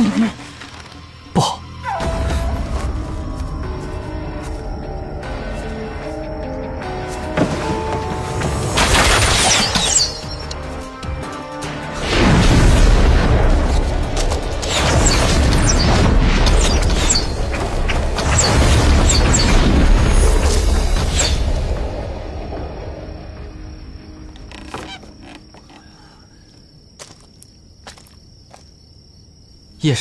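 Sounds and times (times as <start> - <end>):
crickets chirring: 0.0 - 12.0, 12.7 - 30.0
dramatic film score: 0.0 - 28.7.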